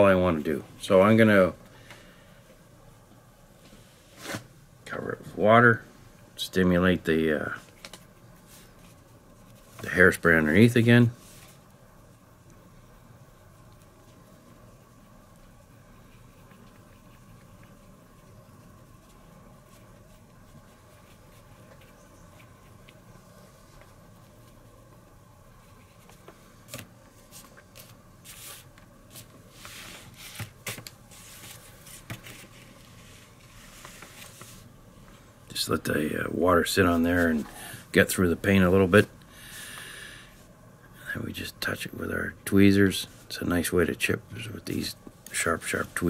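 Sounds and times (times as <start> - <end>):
faint hum: 0.0 - 46.0
wet paintbrush brushing: 7.6 - 10.5, 13.5 - 30.4, 31.1 - 34.7.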